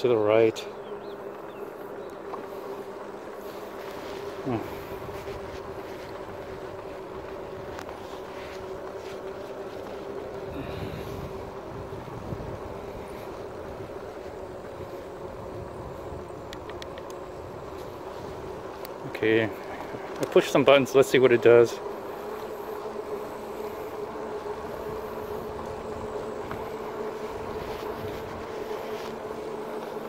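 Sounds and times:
electric motor whine: 0:00.0 - 0:30.0.

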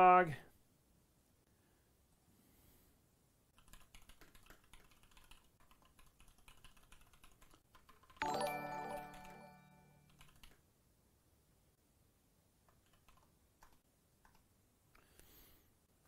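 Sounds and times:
fast typing on keyboard: 0:03.6 - 0:10.6, 0:12.7 - 0:14.5
bright electronic chime: 0:08.2 - 0:10.1.

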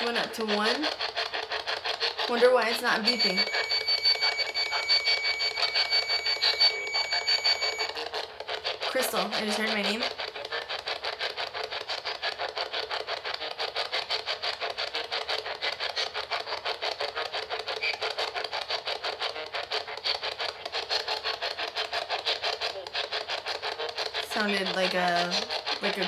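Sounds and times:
pulsing radio static: 0:02.3 - 0:08.0, 0:08.9 - 0:10.8, 0:24.3 - 0:26.0.

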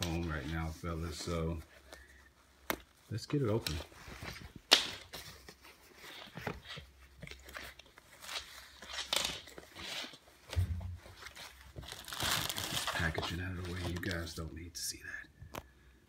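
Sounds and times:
hoodie fabric rustling: 0:00.0 - 0:14.3.

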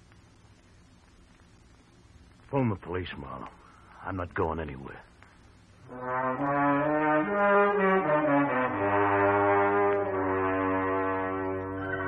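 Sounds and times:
sustained brass chord: 0:05.8 - 0:12.0.

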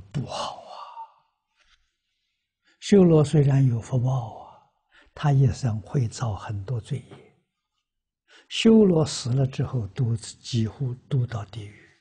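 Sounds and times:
man speaking: 0:00.0 - 0:00.9, 0:02.8 - 0:04.6, 0:05.2 - 0:07.3, 0:08.5 - 0:12.0.

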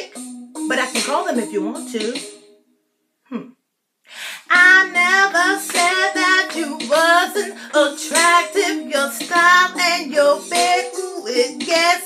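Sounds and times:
breath in: 0:04.1 - 0:04.5.

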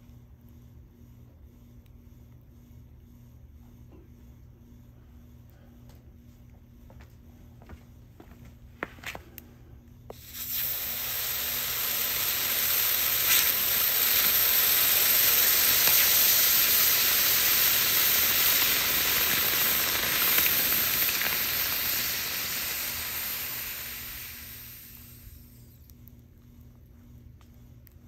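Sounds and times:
hot metal sizzling on ice: 0:10.1 - 0:25.8.

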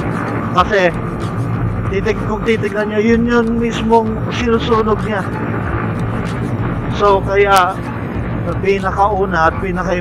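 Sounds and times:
motorcycle engine running: 0:00.0 - 0:10.0
wind rush on microphone: 0:00.0 - 0:10.0.

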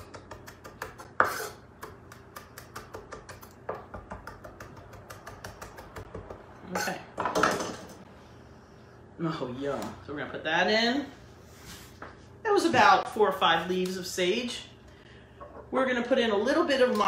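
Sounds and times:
knife scraping across board: 0:01.2 - 0:01.6.

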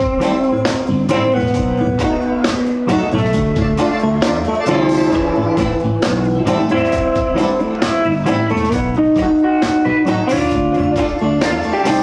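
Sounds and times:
bass guitar: 0:00.0 - 0:12.0
drum beat: 0:00.0 - 0:12.0
electric guitar lines: 0:00.0 - 0:12.0.

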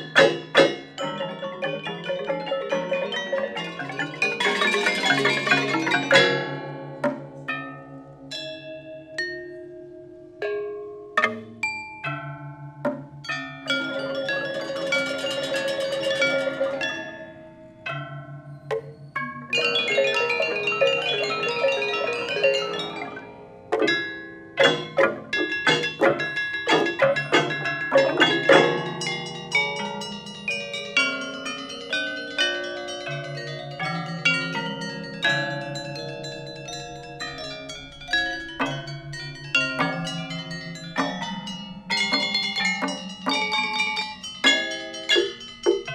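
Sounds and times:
metallophones struck: 0:00.0 - 0:07.9, 0:12.8 - 0:31.8, 0:32.4 - 0:45.9.

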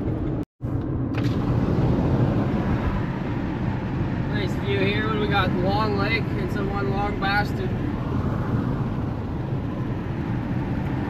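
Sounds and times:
car road noise: 0:00.0 - 0:11.0.

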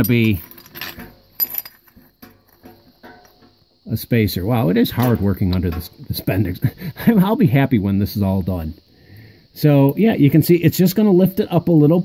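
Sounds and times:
metal plate clinking: 0:00.0 - 0:03.8.

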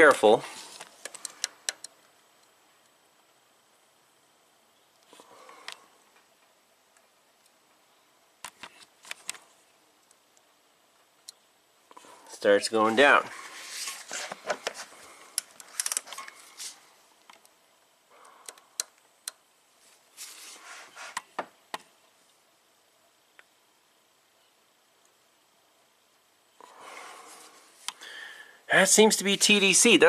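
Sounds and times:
metallic clicks and scrapes of tools: 0:15.4 - 0:16.8.

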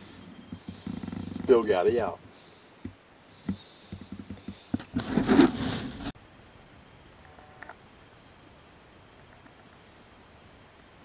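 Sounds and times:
rustling scrape: 0:04.0 - 0:06.2.

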